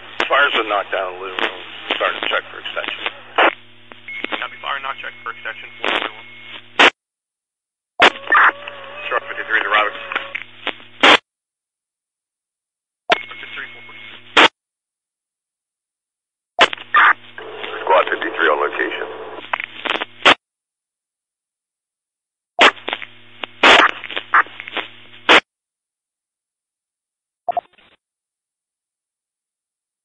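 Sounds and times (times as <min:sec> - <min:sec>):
steady hum: 0:00.0 - 0:06.9
burst of static: 0:00.0 - 0:07.0, 0:08.0 - 0:11.2, 0:16.6 - 0:20.4, 0:22.6 - 0:25.5
voices over radio: 0:00.2 - 0:03.5, 0:04.2 - 0:06.6, 0:08.0 - 0:10.4, 0:13.1 - 0:14.2, 0:16.9 - 0:19.4.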